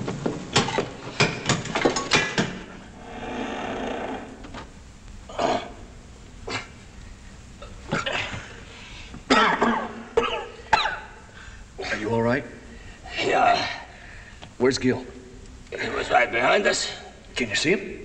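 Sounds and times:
man coughing and grunting: 7.6 - 8.5, 9.3 - 11.2.

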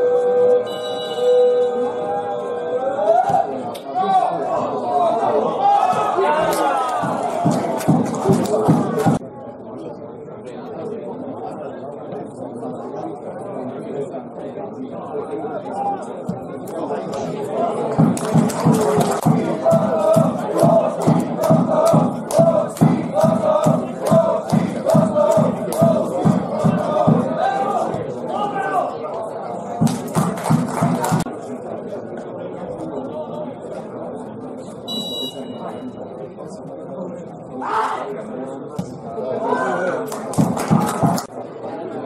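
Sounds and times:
people talking and calling out: 0.0 - 42.0
voices of players and spectators: 0.0 - 42.0
referee's whistle blast: 0.6 - 2.0, 34.9 - 36.0.

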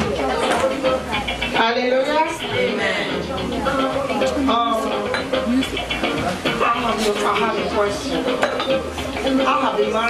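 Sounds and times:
dishes and cutlery clinking: 0.0 - 1.0, 4.2 - 6.2, 8.2 - 9.4.

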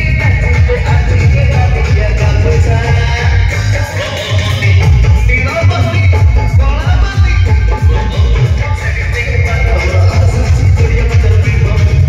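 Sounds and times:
band music over sound system: 0.0 - 12.0.

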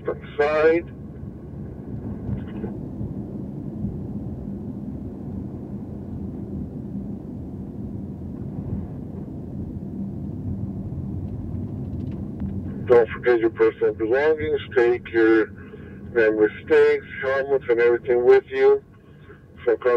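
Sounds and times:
car engine low rumble: 0.0 - 19.9
road noise: 0.0 - 19.9.

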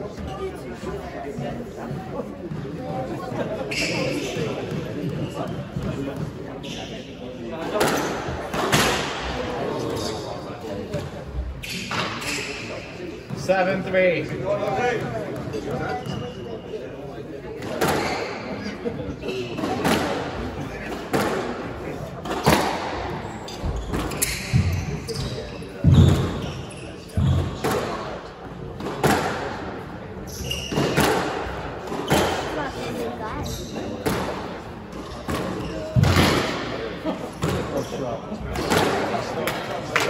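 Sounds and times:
sneakers squeaking on wooden floor: 1.8 - 7.2, 15.0 - 16.8, 23.2 - 28.0, 30.2 - 31.3, 33.4 - 34.0, 34.9 - 36.3.

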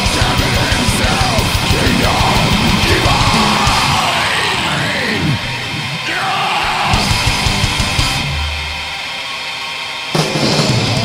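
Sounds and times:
distorted guitar wash: 0.0 - 11.0.

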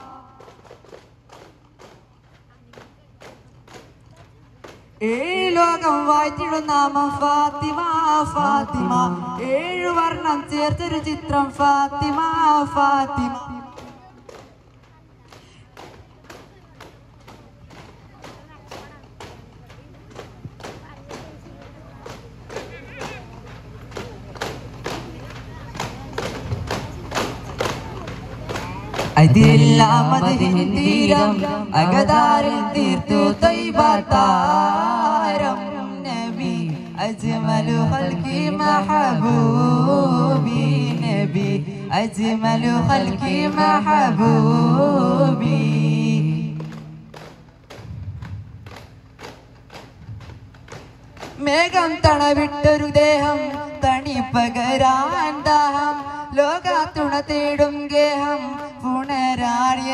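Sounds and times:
frame drums beating: 0.0 - 5.1, 8.4 - 56.7.

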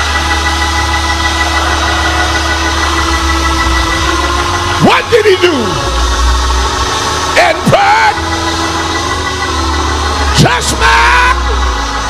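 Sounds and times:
preacher singing: 0.0 - 12.0
sustained church instrumental chord: 0.0 - 12.0.

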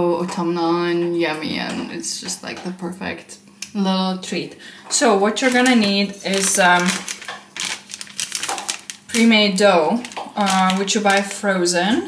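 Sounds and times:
plastic wrapper crinkling: 5.2 - 11.5.

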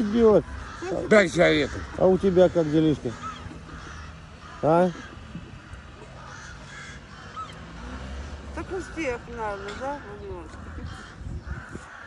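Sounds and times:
crow-like bird caws: 0.0 - 12.0
low outdoor rumble: 0.0 - 12.0.

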